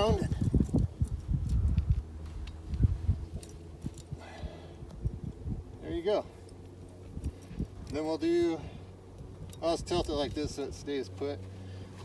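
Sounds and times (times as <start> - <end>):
wind rumble on microphone: 0.0 - 6.3, 7.0 - 10.9.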